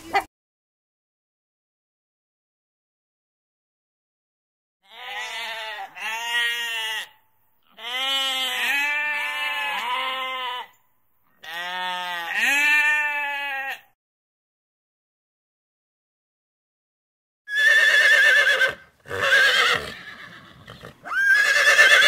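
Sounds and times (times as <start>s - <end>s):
sheep bleating: 4.8s - 10.8s, 11.4s - 14.0s.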